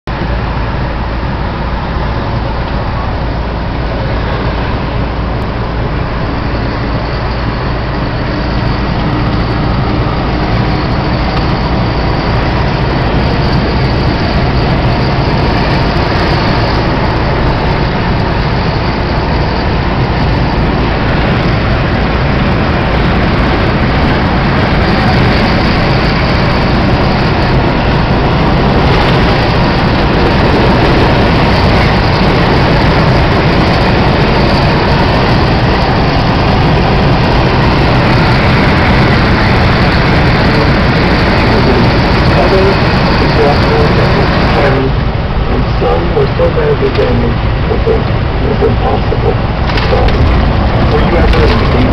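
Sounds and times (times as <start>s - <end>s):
low vehicle hum: 0.0s - 51.9s
tyre and wind rush: 0.1s - 46.2s, 47.1s - 51.9s.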